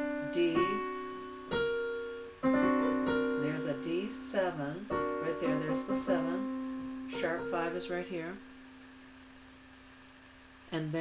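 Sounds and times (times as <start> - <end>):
digital piano chords: 0.0 - 9.3.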